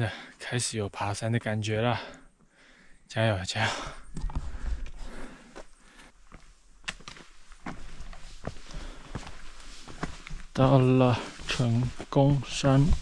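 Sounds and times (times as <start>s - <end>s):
footsteps scuffing on rocky trail: 4.2s - 13.0s.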